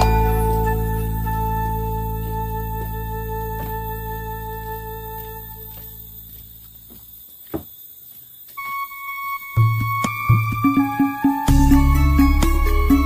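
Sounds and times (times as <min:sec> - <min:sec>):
held keyboard chord: 0:00.0 - 0:05.8, 0:09.6 - 0:13.0
tune with a beat: 0:08.6 - 0:13.0.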